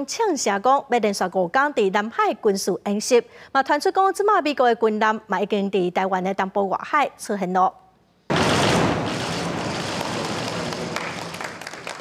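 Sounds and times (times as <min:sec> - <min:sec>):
crowd applauding: 0:08.4 - 0:12.0.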